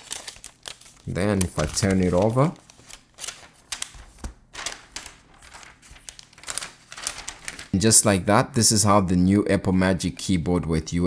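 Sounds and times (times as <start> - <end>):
plastic wrap rustling and crinkling: 0.0 - 7.8.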